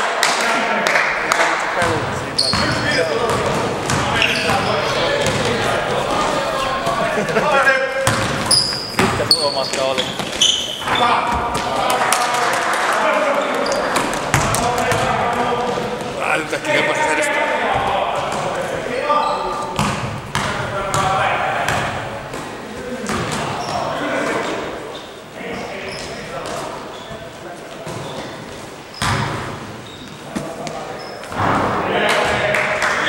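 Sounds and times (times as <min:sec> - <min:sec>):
players calling out: 0:00.5 - 0:28.4
basketball bouncing on hall floor: 0:00.8 - 0:06.6, 0:08.0 - 0:12.3, 0:13.6 - 0:16.2, 0:17.7 - 0:24.7, 0:27.8 - 0:32.6
shoe squeaks: 0:02.3 - 0:03.0, 0:04.0 - 0:05.0, 0:08.4 - 0:11.2, 0:13.6 - 0:14.0, 0:24.9 - 0:27.3, 0:27.9 - 0:31.3.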